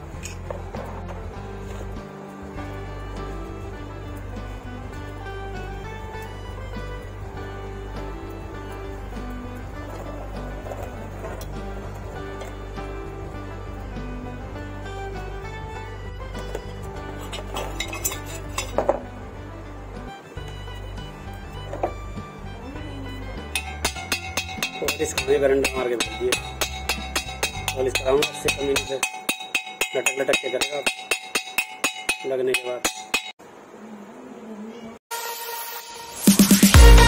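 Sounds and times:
background music: 0.0s - 33.3s, 35.1s - 37.0s
hammer ringing on steel: 23.5s - 33.4s.

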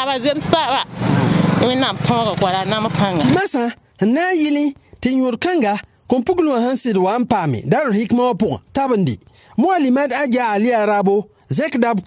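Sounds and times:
woman speaking: 0.0s - 3.7s.

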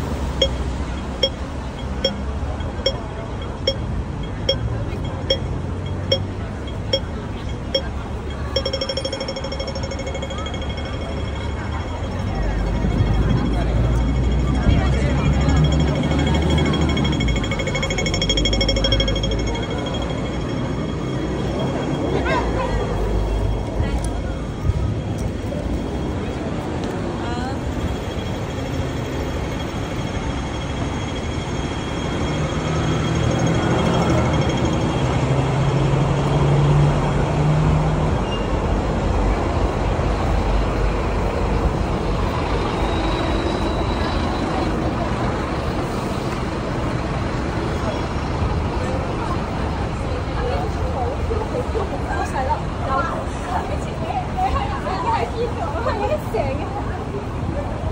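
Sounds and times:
people talking: 0.0s - 37.4s, 38.0s - 57.9s
bus engine droning: 0.0s - 57.9s
city street traffic: 0.0s - 57.9s.

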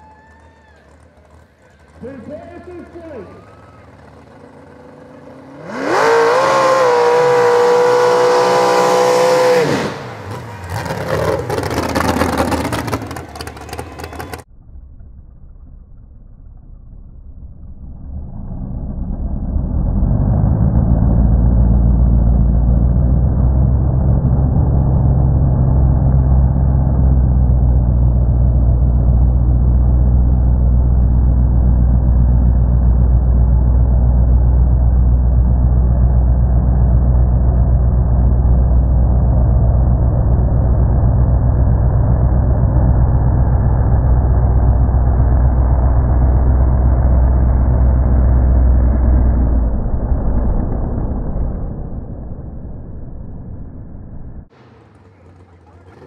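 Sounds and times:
truck engine revving: 0.0s - 14.5s, 17.2s - 56.0s
dull low rumble: 6.4s - 56.0s.

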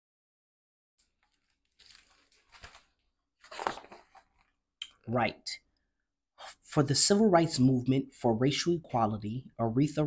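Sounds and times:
paper page rustling: 1.0s - 4.6s.

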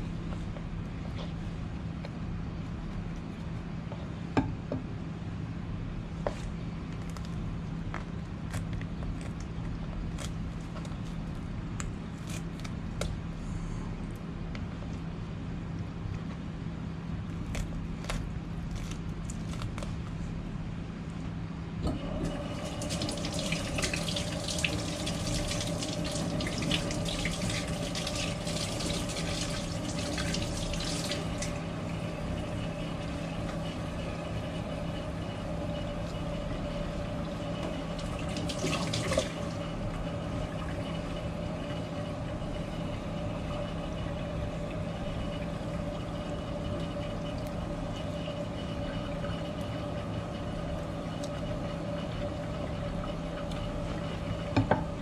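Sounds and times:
steady machine hum: 0.0s - 55.0s.

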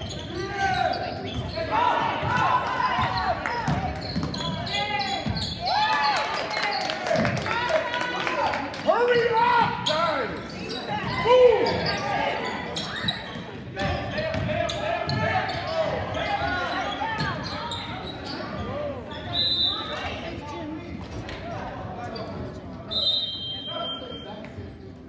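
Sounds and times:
voices and shouts echoing: 0.0s - 25.0s.

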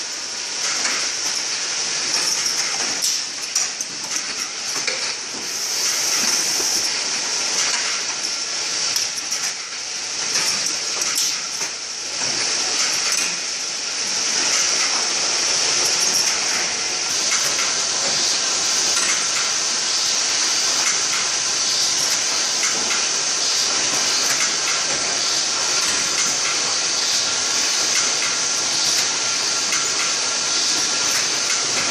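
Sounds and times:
machine mechanisms clattering: 0.0s - 31.9s
compressed air hissing: 5.4s - 7.0s.

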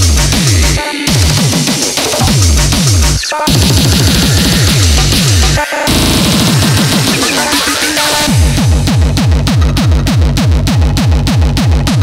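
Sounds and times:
distorted kick drums: 0.0s - 12.0s
harsh noisy synth layers: 0.0s - 12.0s.

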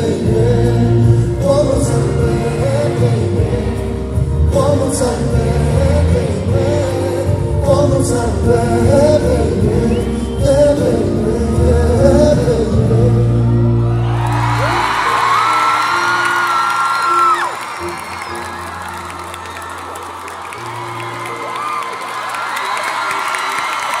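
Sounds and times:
live band playing pop ballad: 0.0s - 21.8s
crowd screaming and cheering: 9.4s - 24.0s.

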